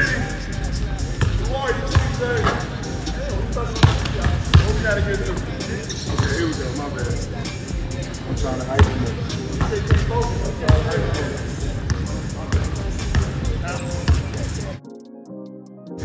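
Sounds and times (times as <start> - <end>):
voices: 0.0 - 14.8
music: 0.0 - 16.0
basketballs bouncing on hardwood floor: 3.8 - 4.8.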